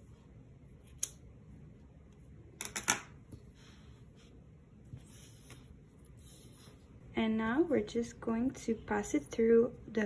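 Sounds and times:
scissors snipping yarn: 0.8s - 1.2s.

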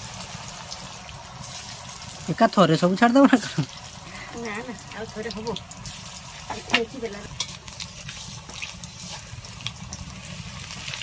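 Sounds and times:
fritters sizzling in hot oil: 0.0s - 11.0s.

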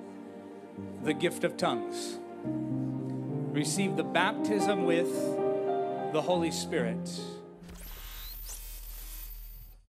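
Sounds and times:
static hiss: 7.8s - 9.8s.

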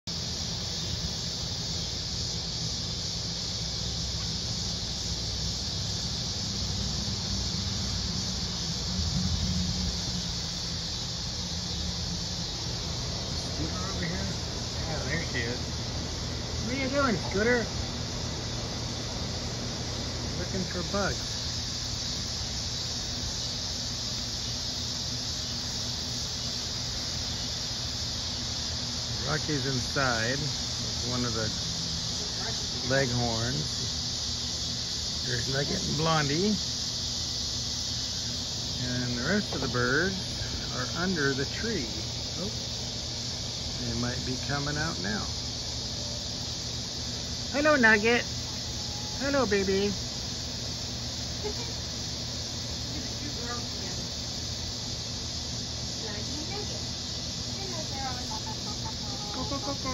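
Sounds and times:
high-pitched hiss: 0.0s - 59.9s
insects droning: 0.0s - 59.9s.

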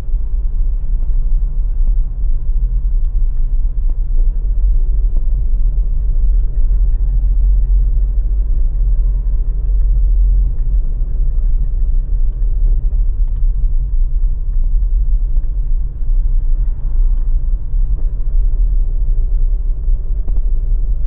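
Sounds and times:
car engine rumble: 0.0s - 21.0s.

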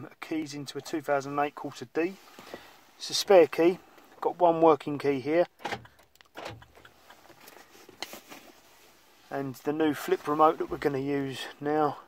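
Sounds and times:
light handling rustle: 5.8s - 11.6s.

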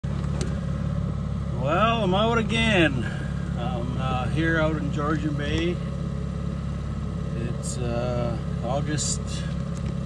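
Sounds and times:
outboard motor droning: 0.0s - 10.0s
man talking: 1.5s - 5.9s, 7.3s - 9.6s.

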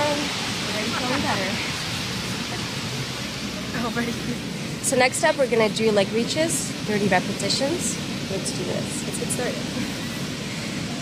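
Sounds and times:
rushing beach ambience: 0.0s - 11.0s.

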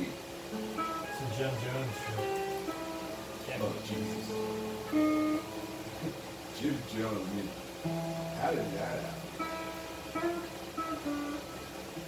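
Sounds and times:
guitar notes ringing: 0.0s - 12.0s.

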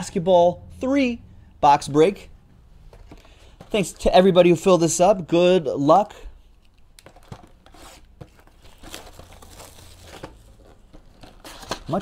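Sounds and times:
plastic shrink wrap tearing: 7.7s - 12.0s.

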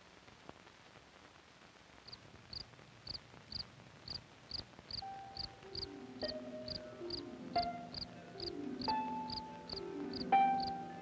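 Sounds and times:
film soundtrack hiss: 0.0s - 11.0s
sustained music notes: 5.0s - 11.0s.

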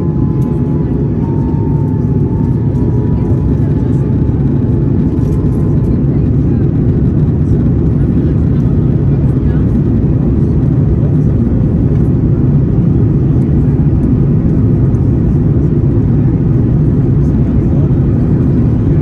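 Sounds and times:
airliner engine noise: 0.0s - 19.0s.

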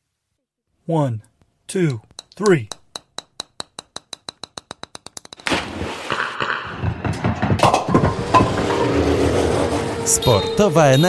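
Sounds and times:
sharp ticks speeding up: 1.9s - 5.4s.

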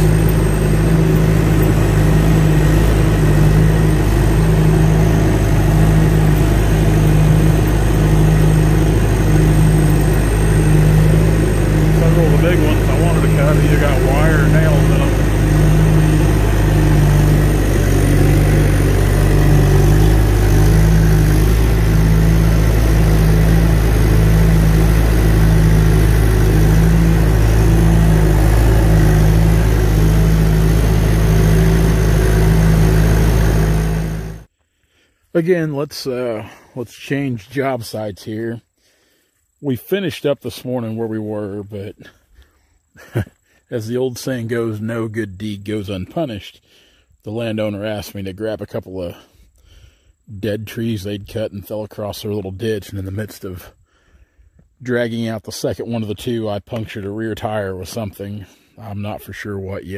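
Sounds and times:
wavering higher sound: 0.0s - 34.5s
diesel engine running: 0.0s - 34.6s.

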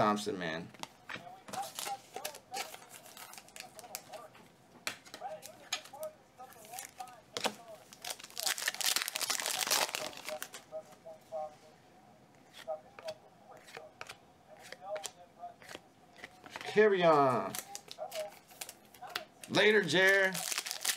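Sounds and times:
plastic crinkling: 1.5s - 4.3s, 5.2s - 10.6s, 20.0s - 20.9s.

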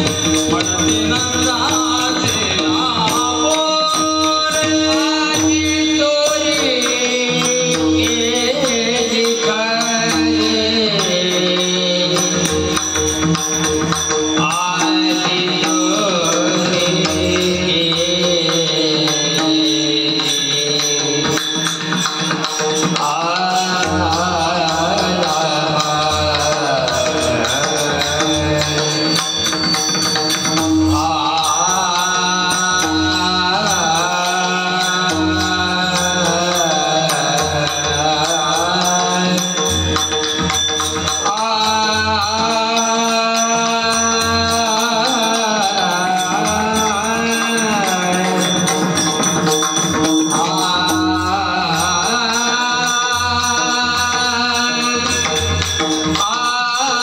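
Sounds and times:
hand cymbals ringing: 0.0s - 57.0s
men singing a devotional chant: 0.0s - 57.0s.

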